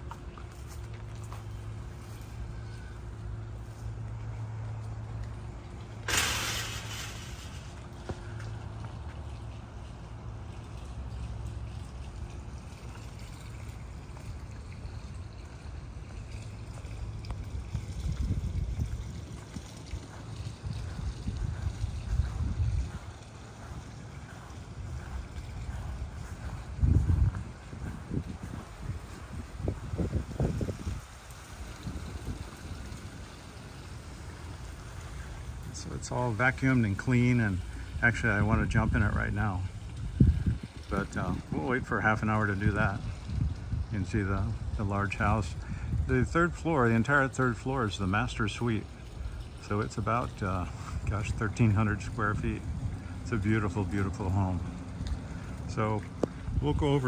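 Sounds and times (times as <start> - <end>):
low machine hum: 0.0 - 57.0
brief hiss: 6.1 - 7.7
wind buffeting microphone: 14.0 - 33.9, 34.9 - 47.2, 49.1 - 57.0.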